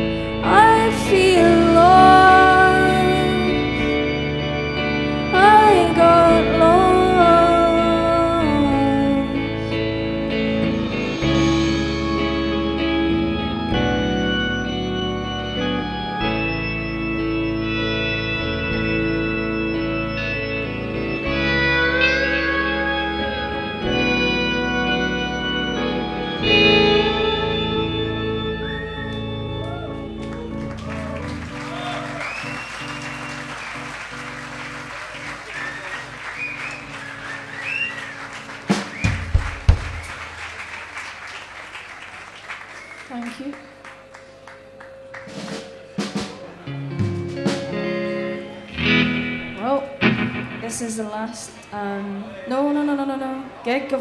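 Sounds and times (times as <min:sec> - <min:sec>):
organ-like keyboard chords: 0:00.0 - 0:51.7
bass: 0:00.0 - 0:54.0
audience applauding and cheering: 0:28.6 - 0:46.8
low thumps: 0:38.7 - 0:40.3.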